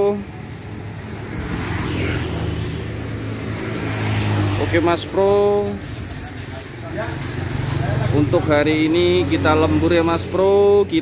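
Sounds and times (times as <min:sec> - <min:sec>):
traffic hum: 0:00.0 - 0:11.0
vehicle passing: 0:00.0 - 0:11.0.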